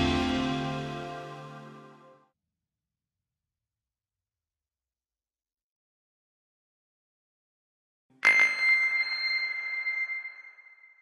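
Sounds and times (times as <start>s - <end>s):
high bell-like chime: 8.2s - 11.0s.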